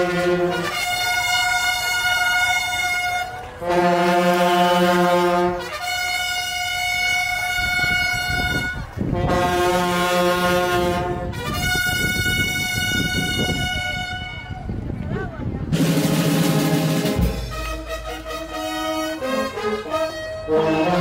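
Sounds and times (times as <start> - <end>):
brass band playing held chords: 0.0 - 14.7, 15.7 - 21.0.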